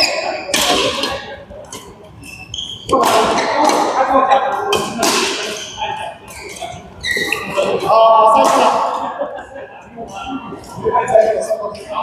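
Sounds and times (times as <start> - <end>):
shoe squeaks on court floor: 0.0 - 3.7, 5.5 - 7.7
racket striking shuttlecock: 0.5 - 1.9, 4.7 - 5.6.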